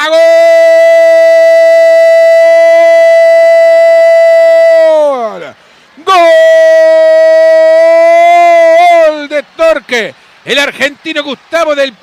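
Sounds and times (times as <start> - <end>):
commentator's long held shout: 0.0 - 10.6.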